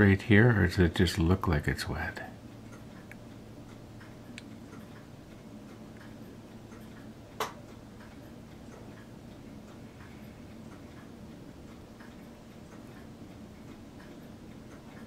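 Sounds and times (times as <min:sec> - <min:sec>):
faint steady hum: 0:00.0 - 0:15.0
light ticks: 0:02.1 - 0:15.0.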